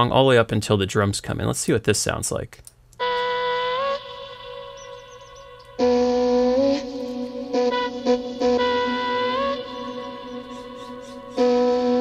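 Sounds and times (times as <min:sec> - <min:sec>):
synthesized held notes: 0:03.0 - 0:12.0.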